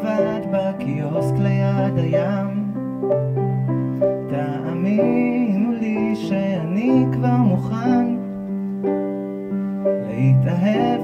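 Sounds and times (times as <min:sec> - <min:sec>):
man singing: 0:00.0 - 0:02.8, 0:04.2 - 0:08.5, 0:09.9 - 0:11.0.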